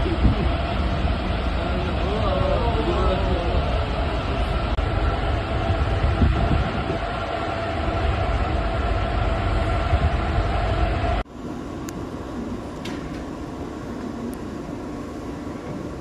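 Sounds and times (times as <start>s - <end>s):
wind noise: 0.0s - 11.2s
ship engine rumbling drone: 0.0s - 16.0s.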